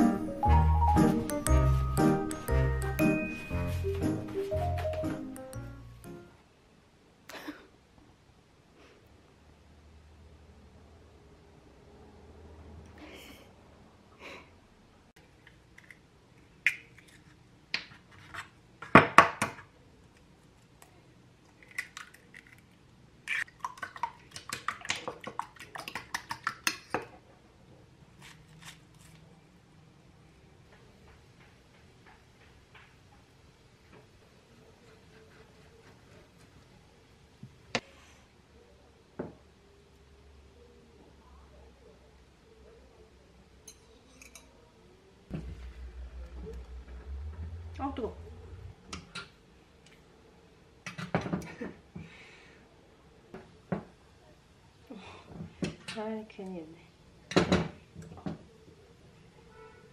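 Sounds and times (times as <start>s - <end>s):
steady low rumble: 45.3s - 49.6s.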